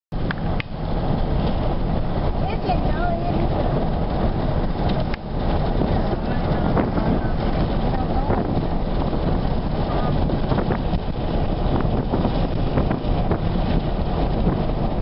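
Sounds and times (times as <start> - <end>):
tyres rumbling on pavement: 0.1 - 15.0
air rushing past car: 0.2 - 15.0.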